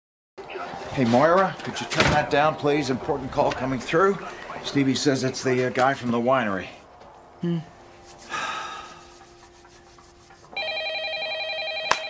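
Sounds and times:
telephone bell ringing: 10.6 - 12.0.

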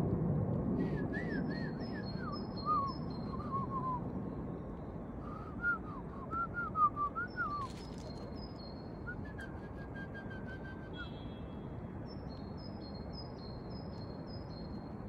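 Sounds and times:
birds whistling calls: 0.8 - 4.1, 5.2 - 11.4.

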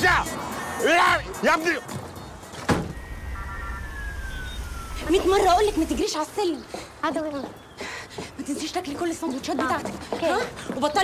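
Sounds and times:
low rumble of city traffic: 0.0 - 11.0
distant siren falling in pitch: 2.9 - 6.0.

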